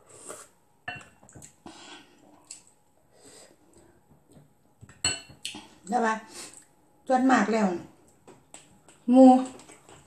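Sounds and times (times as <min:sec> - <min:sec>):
metal spoon clinking glass bowl: 0:05.0 - 0:05.4
woman talking: 0:07.1 - 0:07.9, 0:09.1 - 0:09.6.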